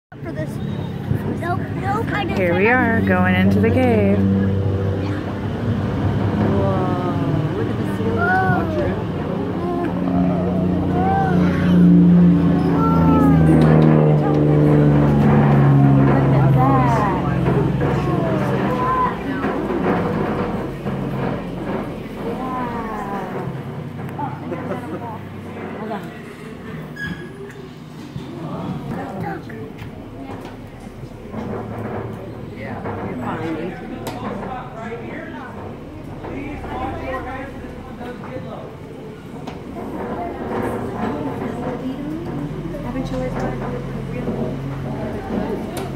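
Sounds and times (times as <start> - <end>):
passengers talking: 0.1 - 45.9
tram engine humming: 0.1 - 45.9
steady low rumble: 1.0 - 26.9, 28.1 - 45.8.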